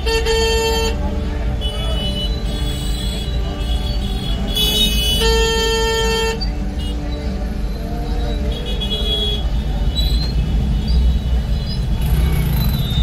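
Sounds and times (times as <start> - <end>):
vehicle horns honking: 0.0 - 7.4, 8.2 - 10.9
crowd noise: 0.0 - 13.0
street traffic rumble: 0.0 - 13.0.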